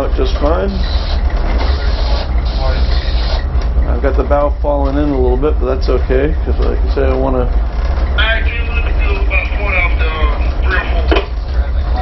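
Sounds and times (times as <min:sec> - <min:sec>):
tugboat diesel engines rumbling: 0:00.0 - 0:12.0.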